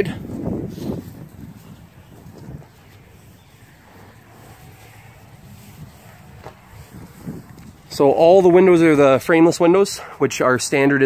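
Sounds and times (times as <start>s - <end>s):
wind rumbling on microphone: 0.0s - 9.6s
footsteps on grass: 0.2s - 9.2s.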